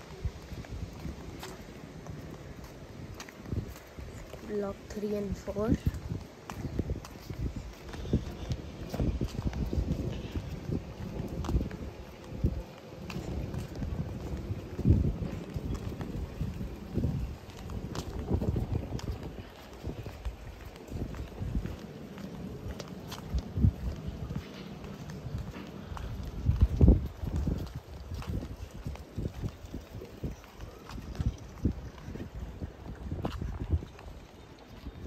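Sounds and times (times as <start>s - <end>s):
footsteps on concrete: 0.0s - 35.0s.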